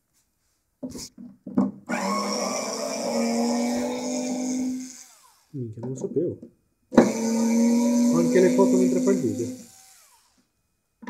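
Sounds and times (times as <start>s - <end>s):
cordless screwdriver motor running: 1.9s - 5.5s, 7.0s - 10.4s.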